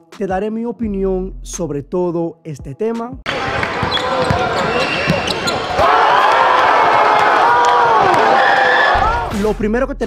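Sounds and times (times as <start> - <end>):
crowd shouting and cheering: 3.3 - 9.5
basketball bouncing on hardwood floor: 3.4 - 5.4.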